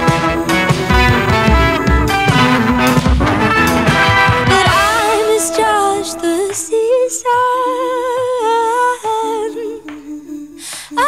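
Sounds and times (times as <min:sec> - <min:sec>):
woman humming a melody: 0:04.6 - 0:08.2
low sustained accompaniment: 0:04.7 - 0:07.1.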